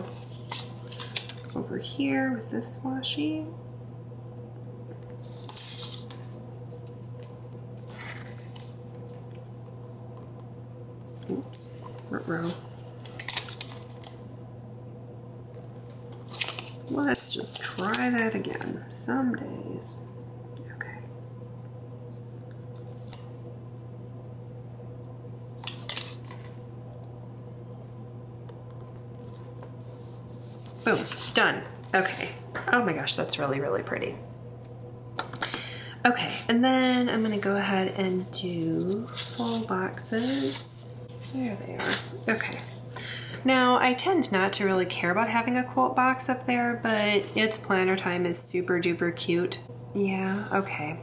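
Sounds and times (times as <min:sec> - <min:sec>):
tape peeling papery rustle: 0:00.0 - 0:01.6, 0:05.2 - 0:06.3, 0:13.0 - 0:14.2, 0:15.9 - 0:18.2, 0:25.6 - 0:26.6
steady low hum: 0:00.0 - 0:51.0
crisp crackling handling noise: 0:12.9 - 0:14.2, 0:15.6 - 0:18.7.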